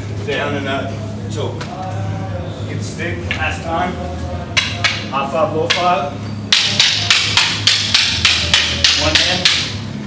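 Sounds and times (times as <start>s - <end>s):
wooden sticks clacking together: 4.6s - 5.9s, 6.5s - 9.8s.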